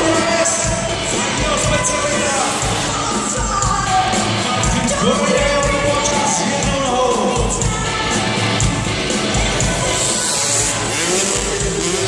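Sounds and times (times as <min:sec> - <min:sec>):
loud arena crowd din: 0:00.0 - 0:12.0
motorbike engine revving: 0:09.4 - 0:12.0.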